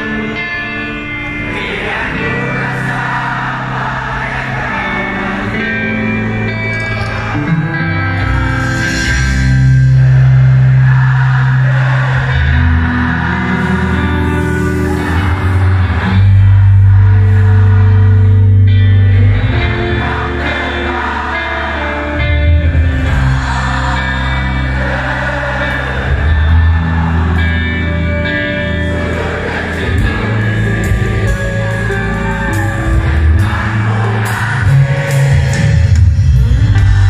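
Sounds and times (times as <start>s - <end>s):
live rock band music: 0.0s - 37.0s
low bass notes: 0.0s - 37.0s.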